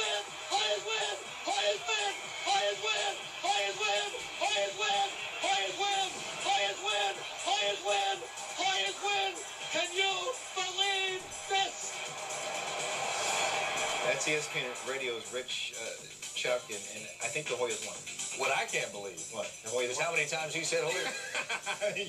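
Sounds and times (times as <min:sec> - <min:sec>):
announcer shouting a chant: 0:00.0 - 0:12.0.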